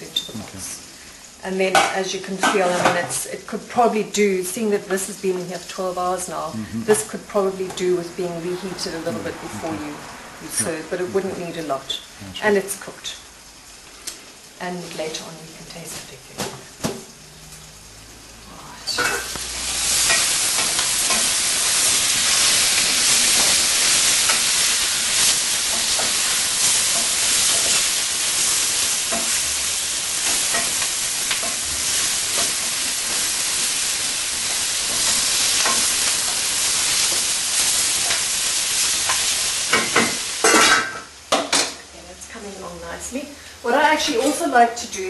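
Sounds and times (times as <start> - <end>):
meat and onions sizzling in a pot: 0.0 - 45.0.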